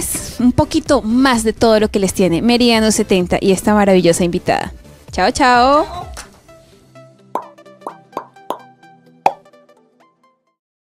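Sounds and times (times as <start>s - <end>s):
sharp struck notes: 7.4s - 8.7s.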